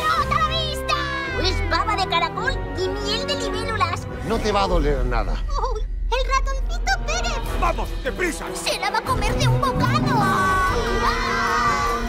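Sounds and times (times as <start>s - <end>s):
music: 0.0s - 12.0s
high-pitched voices shouting: 9.4s - 12.0s.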